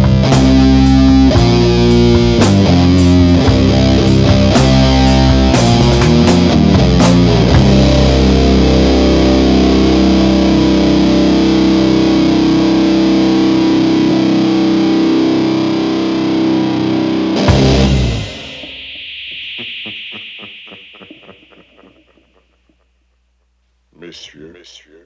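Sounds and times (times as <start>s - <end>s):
distorted guitars sustained chord: 0.0s - 24.6s
high ringing tone: 17.0s - 23.6s.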